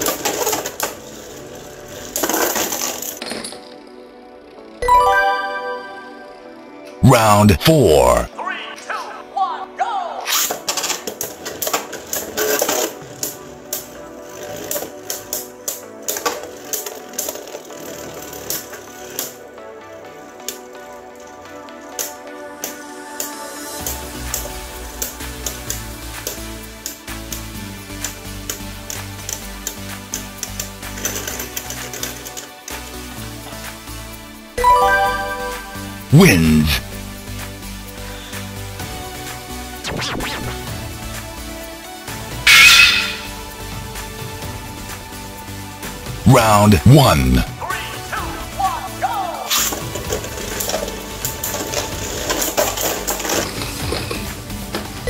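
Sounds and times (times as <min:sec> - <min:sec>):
background music: 0:00.0 - 0:55.0
bright pitched tone: 0:04.8 - 0:06.4, 0:34.6 - 0:36.0.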